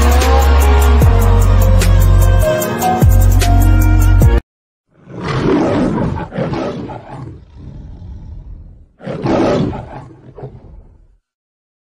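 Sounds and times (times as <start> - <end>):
lion roaring: 4.9 - 11.2.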